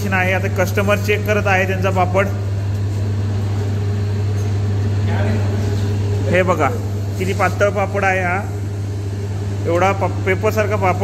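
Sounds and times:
machine motor humming: 0.0s - 11.0s.

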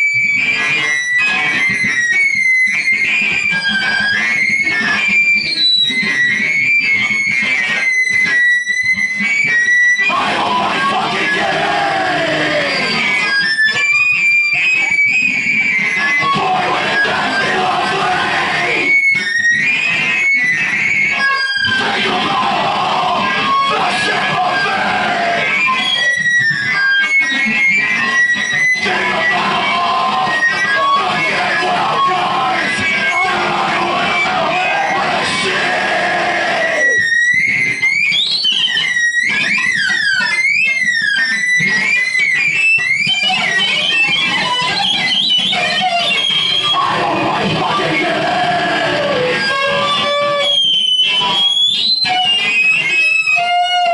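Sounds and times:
high squealing tones: 0.0s - 53.9s
person shouting into microphone: 10.1s - 12.9s, 16.2s - 18.9s, 21.7s - 25.4s, 28.8s - 37.0s, 46.7s - 49.2s
distorted electronic noise: 28.2s - 37.1s.

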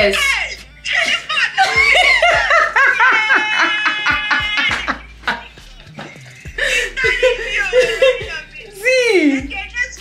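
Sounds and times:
woman laughing: 0.9s - 5.6s, 6.5s - 9.4s.

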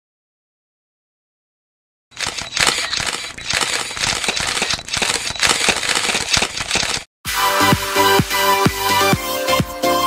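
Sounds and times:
camera shutters clicking rapidly: 2.2s - 7.1s.

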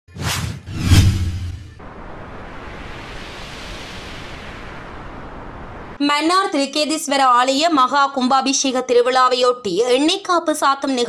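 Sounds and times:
whoosh sound effects: 0.1s - 6.0s.

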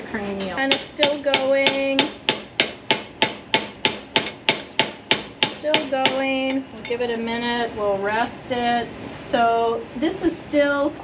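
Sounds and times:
mallet tapping metal: 0.6s - 7.0s.

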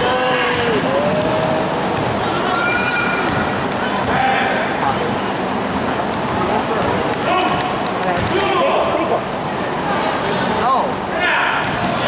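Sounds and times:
voices in a gym hall: 0.0s - 12.0s.

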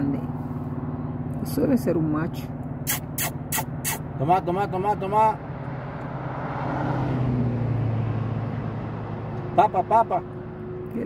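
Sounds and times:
vehicle passing on road: 0.0s - 11.0s.

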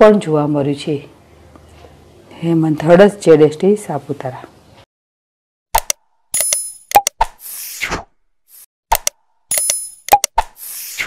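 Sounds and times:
clicks: 8.9s - 10.6s.

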